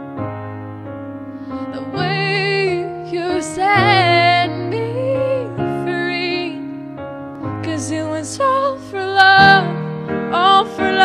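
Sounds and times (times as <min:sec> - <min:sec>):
piano chords: 0:00.0 - 0:11.0
woman singing a ballad: 0:01.6 - 0:11.0.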